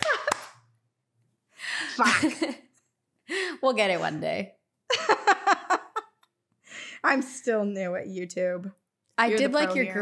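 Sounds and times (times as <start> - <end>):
sharp hand clap: 0.0 - 0.6
woman's voice: 1.9 - 2.6, 3.4 - 4.5, 6.9 - 10.0.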